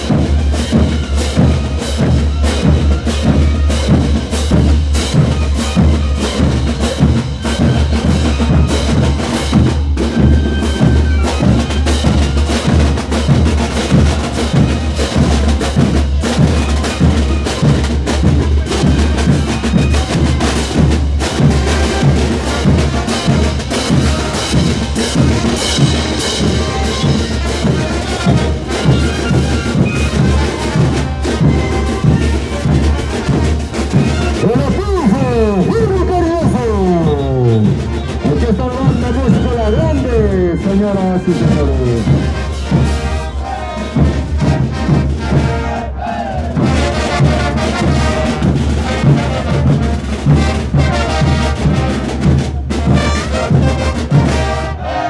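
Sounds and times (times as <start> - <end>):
bass drums: 0.0 - 43.3, 46.3 - 54.6
marching brass band: 0.0 - 55.0
snare drums: 0.0 - 55.0.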